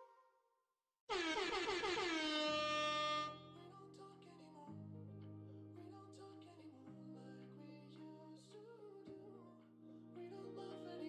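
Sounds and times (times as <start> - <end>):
wobbling air horn blast: 1.1 - 3.5.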